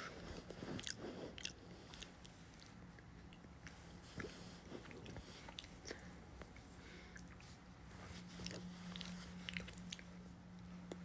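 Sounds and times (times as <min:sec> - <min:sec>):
steady low hum: 0:00.0 - 0:11.0
person chewing food: 0:00.3 - 0:07.4, 0:08.4 - 0:10.2.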